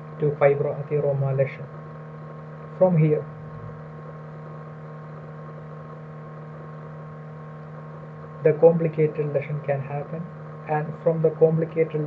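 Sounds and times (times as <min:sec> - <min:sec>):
steady electrical hum: 0:00.0 - 0:12.0.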